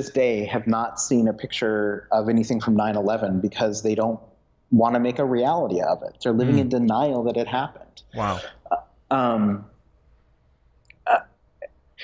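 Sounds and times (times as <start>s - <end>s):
man saying uh: 0.0s - 4.2s, 4.8s - 9.6s.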